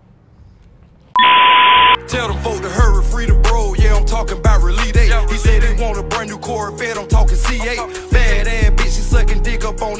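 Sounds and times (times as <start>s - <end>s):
loud electronic beep: 1.2s - 2.0s.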